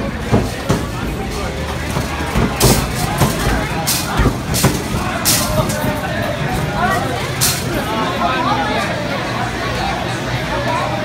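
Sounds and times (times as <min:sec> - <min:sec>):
background voices: 0:00.0 - 0:10.8
crowd chatter in a bar: 0:00.0 - 0:11.0
traffic: 0:00.0 - 0:11.0.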